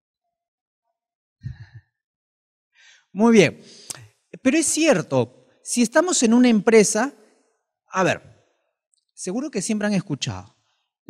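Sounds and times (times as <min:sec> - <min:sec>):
faint breath: 0:02.8 - 0:04.0.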